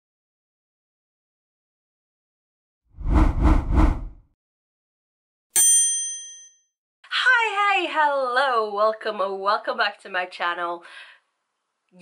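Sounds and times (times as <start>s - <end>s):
bright bell-like ding: 5.6s - 6.7s.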